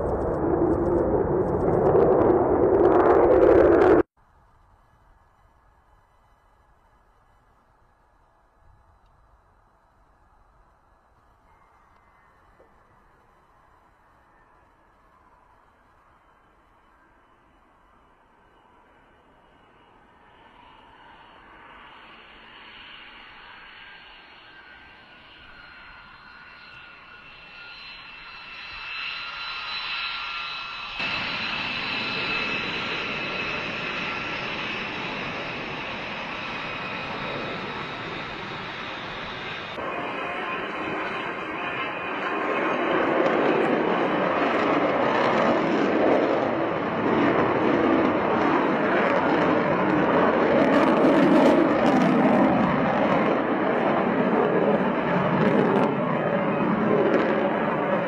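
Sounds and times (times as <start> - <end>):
jet engine turbine whine: 0.0 - 58.0
jet flying overhead rumble: 0.0 - 58.0.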